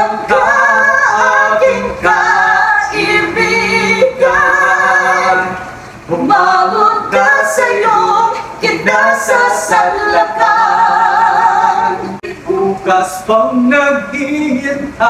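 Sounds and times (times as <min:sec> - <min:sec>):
man and woman singing together: 0:00.0 - 0:15.0.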